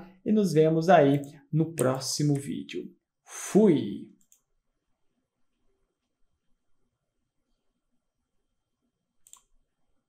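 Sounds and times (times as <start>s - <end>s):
faint computer mouse clicks: 9.2s - 9.5s.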